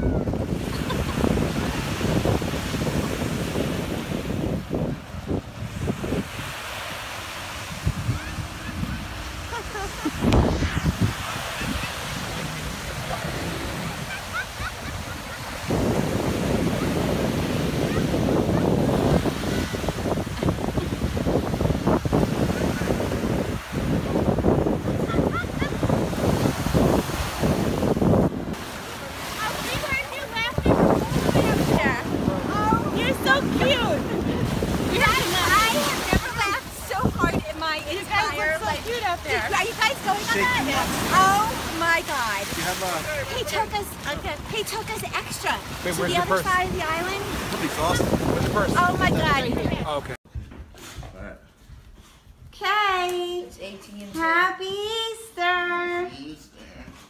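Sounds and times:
surf washing onto beach: 0:00.0 - 0:50.2
wind buffeting microphone: 0:00.0 - 0:52.6.

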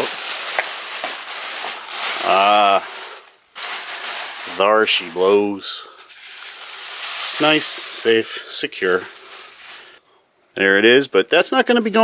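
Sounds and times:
plastic sheeting crinkling: 0:00.0 - 0:10.0.

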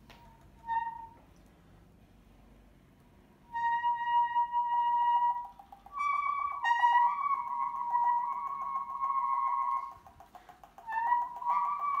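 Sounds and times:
fast even pulsing: 0:05.4 - 0:12.0.

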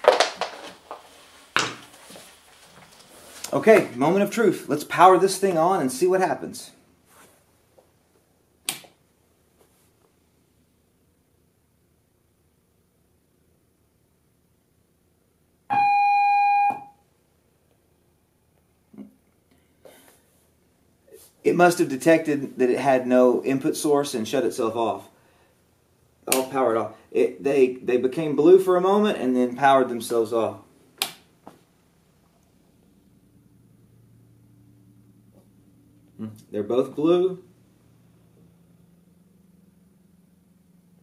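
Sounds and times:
electronic power-on beep: 0:15.7 - 0:17.0.

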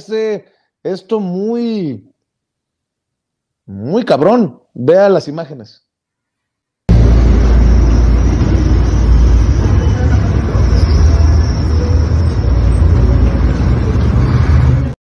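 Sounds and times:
metro train rumble: 0:06.9 - 0:15.0.

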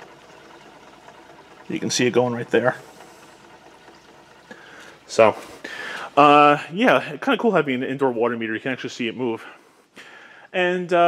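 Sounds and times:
water running through pipes: 0:00.0 - 0:09.8.

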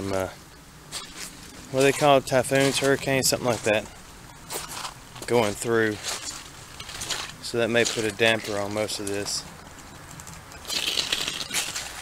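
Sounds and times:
footsteps on gravel and leaves: 0:00.9 - 0:12.0.

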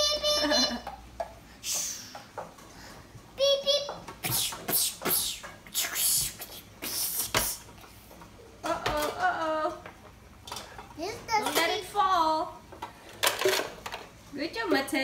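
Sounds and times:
plastic toy truck clattering: 0:13.1 - 0:14.1.

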